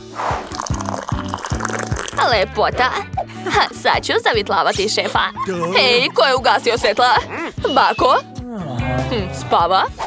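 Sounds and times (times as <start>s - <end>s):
background music with bass line: 0.0s - 10.0s
milkshake pouring into mug: 0.4s - 2.4s.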